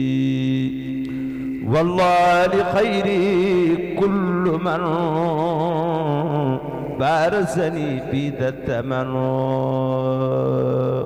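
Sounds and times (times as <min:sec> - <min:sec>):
man chanting with vibrato: 0:00.0 - 0:11.0.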